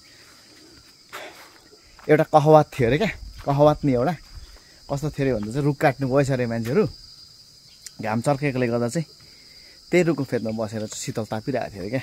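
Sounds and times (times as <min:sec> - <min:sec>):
insect chirring: 0:00.0 - 0:12.0
man talking: 0:02.0 - 0:04.3, 0:04.9 - 0:07.0, 0:07.9 - 0:09.1, 0:09.9 - 0:12.0.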